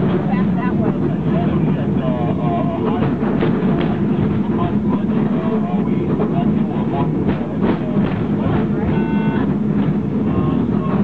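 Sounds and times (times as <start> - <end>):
cable car rumbling on track: 0.0 - 11.0
people's voices: 0.0 - 11.0.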